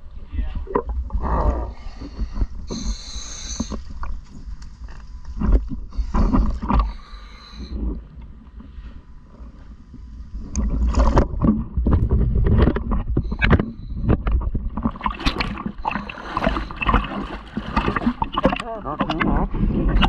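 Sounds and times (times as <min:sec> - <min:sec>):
low rumble of water: 0:00.0 - 0:20.0
diver inhaling through regulator: 0:01.2 - 0:04.0, 0:05.9 - 0:08.0, 0:15.8 - 0:17.4
bubbling exhalations: 0:14.7 - 0:20.0.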